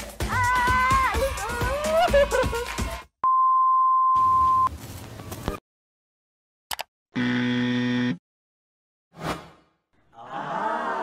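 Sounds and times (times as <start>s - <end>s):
electronic buzzer: 7.2s - 8.2s.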